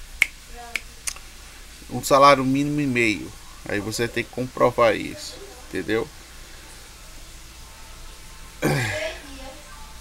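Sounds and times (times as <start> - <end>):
person clearing throat: 8.6 - 9.2.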